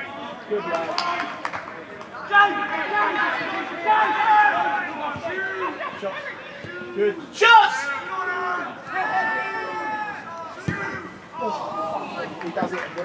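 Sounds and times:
people shouting and calling: 2.2s - 12.5s.

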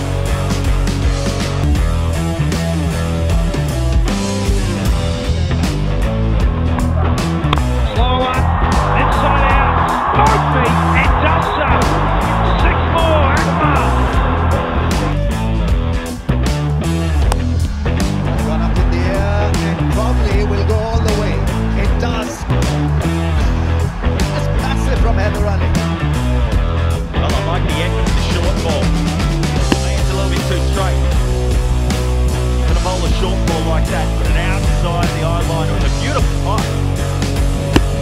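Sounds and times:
rock music with guitar: 0.0s - 38.0s.

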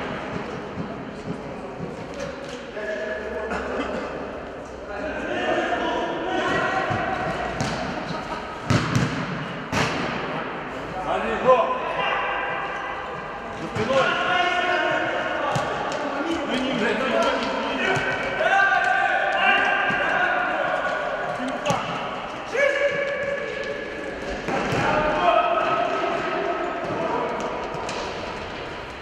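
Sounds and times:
players shouting: 5.0s - 8.9s, 13.7s - 27.6s.

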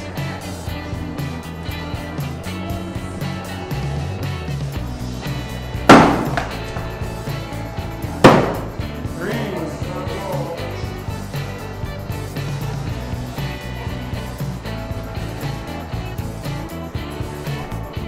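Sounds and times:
background music: 0.0s - 18.0s
axes striking wooden board: 5.9s - 6.9s, 8.2s - 8.8s.

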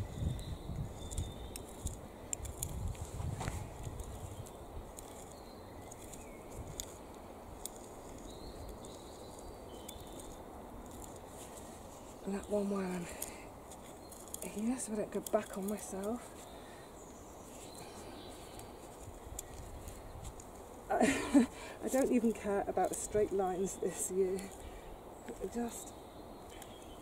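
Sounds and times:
faint bird chirps: 0.0s - 1.8s, 8.1s - 10.4s, 23.1s - 27.0s
wind rumble on microphone: 0.0s - 12.6s.

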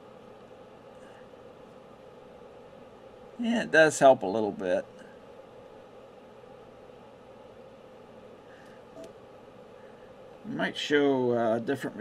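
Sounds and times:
faint steady hiss: 0.0s - 12.0s
low hum: 0.0s - 12.0s.

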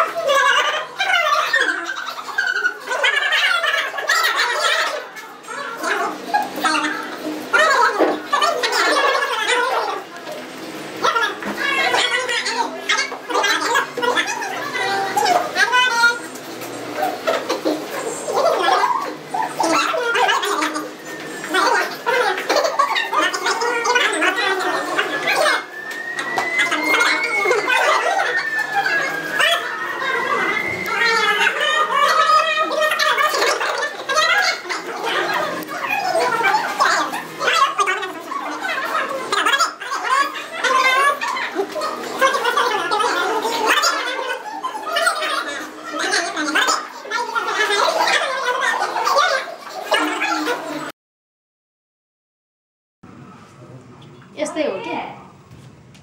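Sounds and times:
people talking indistinctly: 0.0s - 50.9s
people yelping and laughing: 0.0s - 50.9s.

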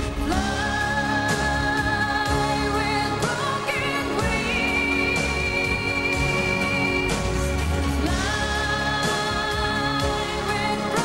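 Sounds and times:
band and synthesizer backing: 0.0s - 11.0s.

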